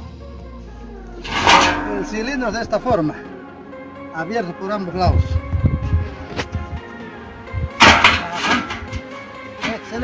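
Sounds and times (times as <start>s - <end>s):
background music: 0.0s - 10.0s
metal drum scraping knock: 1.2s - 2.1s, 7.8s - 9.0s.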